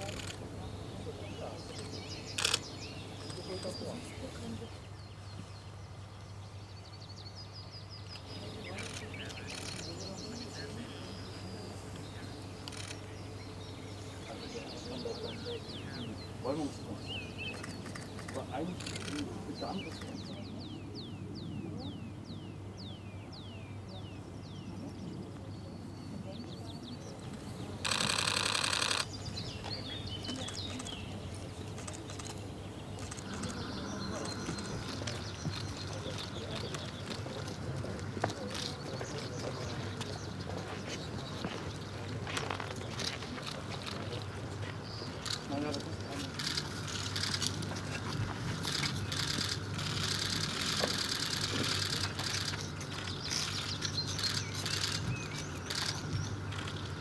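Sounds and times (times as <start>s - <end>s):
birds chirping: 0.0s - 57.0s
outdoor background noise: 0.0s - 57.0s
rapid mechanical clicking: 48.6s - 57.0s.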